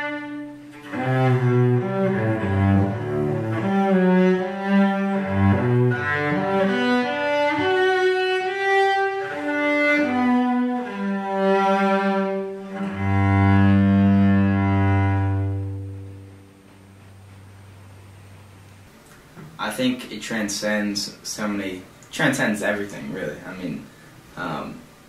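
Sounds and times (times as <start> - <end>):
bowed cello melody: 0.0 - 18.9.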